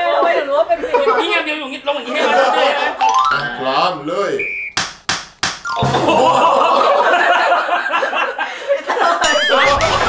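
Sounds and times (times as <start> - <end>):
hand slapping helmet shell: 4.8 - 5.6.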